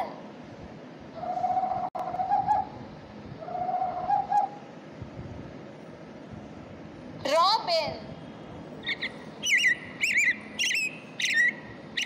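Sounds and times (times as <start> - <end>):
owl hooting: 1.1 - 2.8, 3.4 - 4.7, 8.8 - 12.0.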